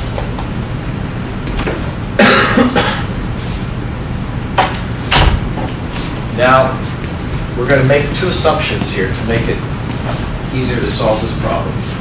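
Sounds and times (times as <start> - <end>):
low room noise: 0.0 - 12.0
person coughing: 2.2 - 3.1.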